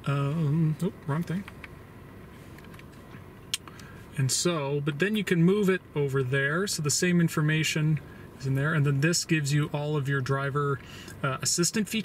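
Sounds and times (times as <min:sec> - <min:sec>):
car cabin background: 0:00.0 - 0:12.0.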